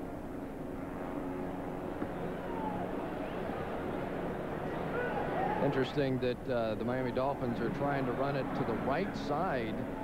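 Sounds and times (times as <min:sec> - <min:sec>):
stadium crowd murmur: 0:00.9 - 0:10.0
faint crowd shouts: 0:02.0 - 0:04.0, 0:04.6 - 0:05.8.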